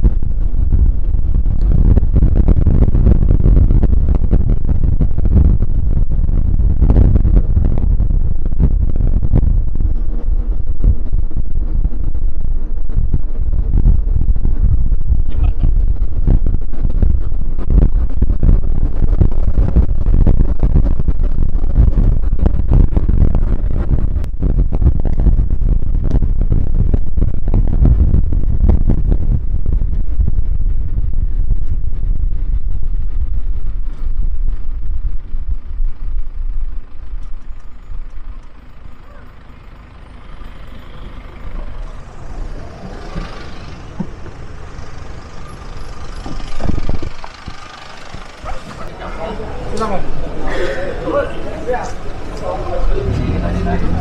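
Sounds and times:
vehicle engine and road rumble: 0.0 - 54.0.

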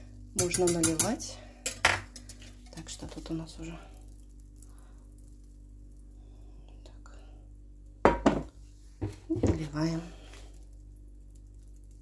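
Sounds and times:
steady low hum: 0.0 - 12.0
metal cookware clattering: 0.4 - 2.4.

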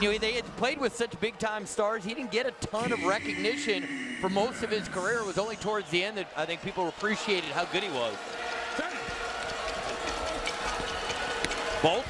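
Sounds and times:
arena crowd din: 0.0 - 12.0
sustained tones: 2.8 - 5.8.

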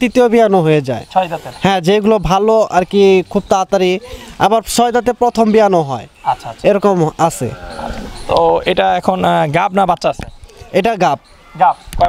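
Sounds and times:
man speaking: 0.0 - 12.0.

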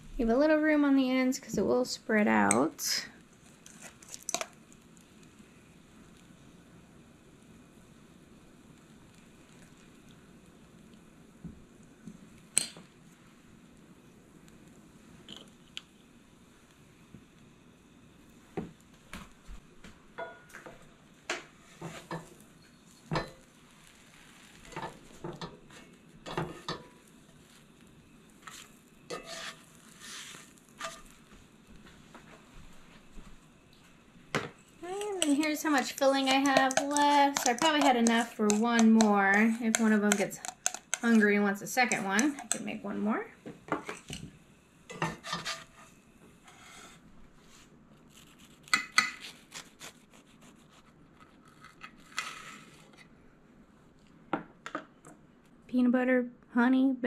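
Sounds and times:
sandwiches sizzling in skillet: 1.2 - 19.8, 20.8 - 42.8, 43.8 - 52.9
spatula scraping and knocking pan: 20.2 - 22.4, 24.5 - 27.4, 28.4 - 31.3, 35.2 - 42.8, 44.9 - 45.9.

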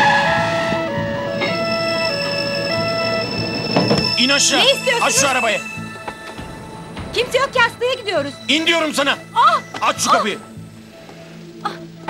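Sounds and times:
tense electronic background music: 0.0 - 12.0.

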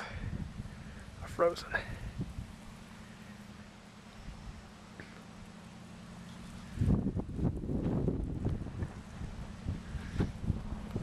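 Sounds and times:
wind buffeting microphone: 0.0 - 2.8, 6.6 - 11.0.

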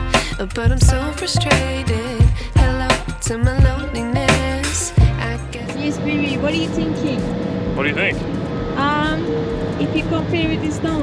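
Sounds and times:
background music: 0.0 - 11.0
ferry engine drone: 5.3 - 11.0.

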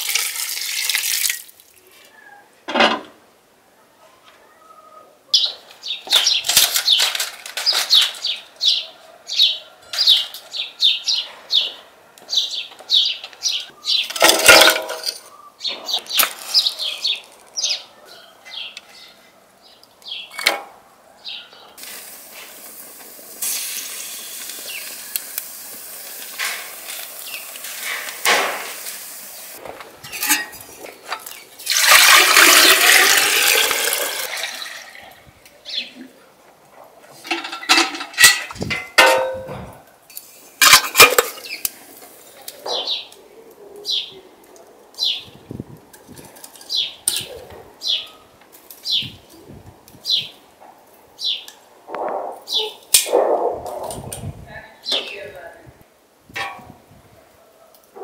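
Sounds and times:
water pouring from metal jug: 0.0 - 1.7, 31.2 - 35.0
wood fire hissing: 21.8 - 29.9.

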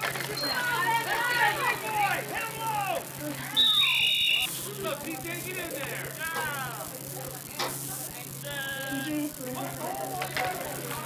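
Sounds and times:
spectators shouting and cheering: 0.0 - 6.9
referee's whistle blast: 3.6 - 4.6.

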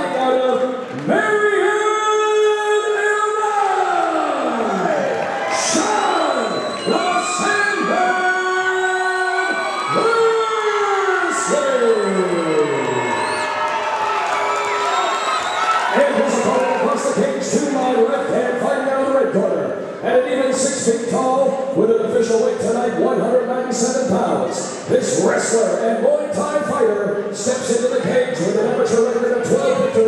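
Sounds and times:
crowd cheering and whooping: 3.6 - 17.4.

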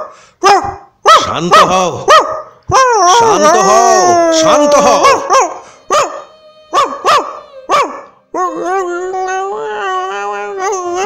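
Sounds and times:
dog barking: 0.4 - 3.3, 5.0 - 8.5
dog wavering cry: 2.1 - 11.0.

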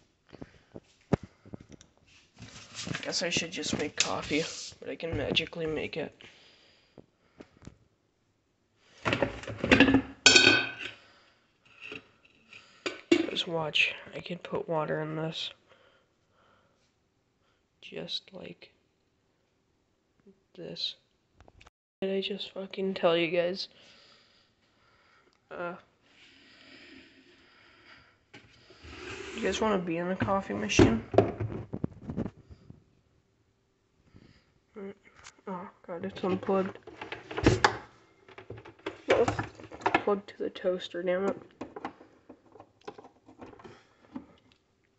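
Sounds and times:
coffee maker knocking and rattling: 9.1 - 10.8, 30.2 - 31.9, 36.2 - 40.1, 41.6 - 43.8.

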